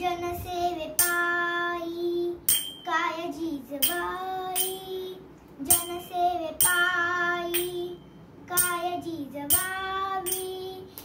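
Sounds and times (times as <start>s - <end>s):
small hand cymbals struck: 2.5s - 2.9s, 3.8s - 5.0s, 5.7s - 6.9s, 7.5s - 8.9s, 9.5s - 10.7s.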